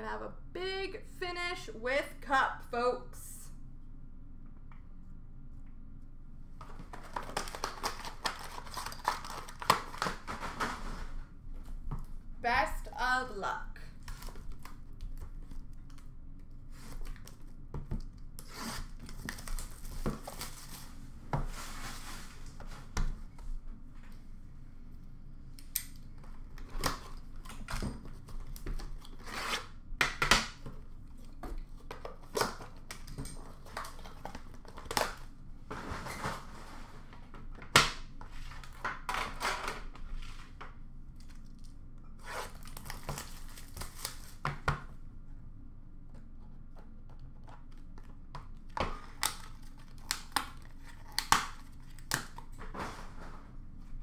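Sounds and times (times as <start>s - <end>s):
packaging tearing and crinkling: 6.9s - 10.8s, 42.2s - 44.4s.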